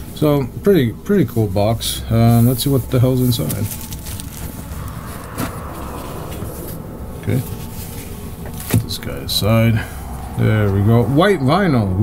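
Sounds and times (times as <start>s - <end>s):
steady low rumble: 4.0s - 12.0s.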